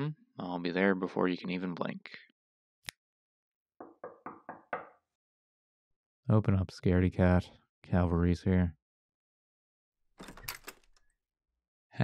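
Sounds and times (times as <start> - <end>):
knuckles knocking on door: 3.8 - 5.0.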